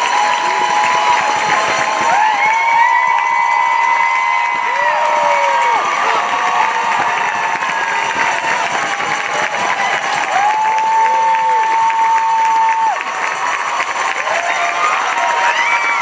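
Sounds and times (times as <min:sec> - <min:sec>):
audience applauding and cheering: 0:00.0 - 0:16.0
high shouts and whoops: 0:00.0 - 0:16.0
long high cry: 0:10.3 - 0:13.0.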